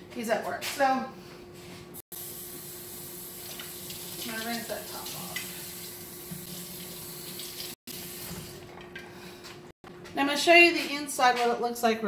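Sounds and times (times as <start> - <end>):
faucet running into sink: 2.2 - 8.5.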